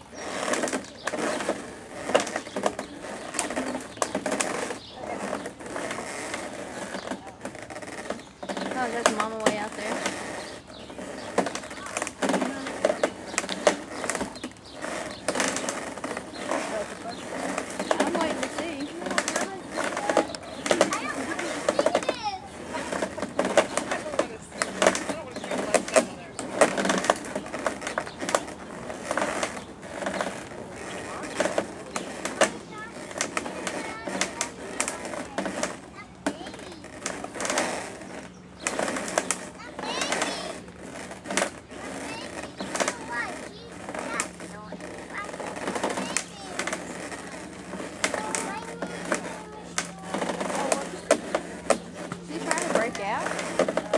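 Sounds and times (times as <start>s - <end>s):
horse rubbing against fence rail: 0.0s - 53.9s
indistinct chatter of onlookers: 0.0s - 53.9s.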